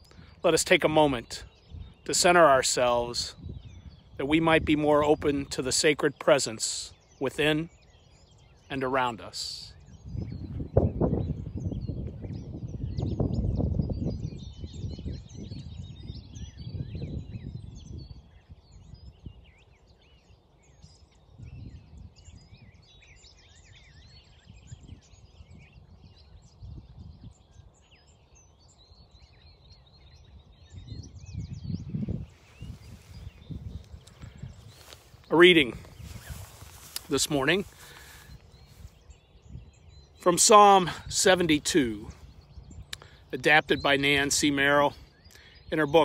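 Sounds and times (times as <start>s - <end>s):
birds singing and chirping: 0.0s - 46.0s
low microphone rumble: 30.2s - 40.2s.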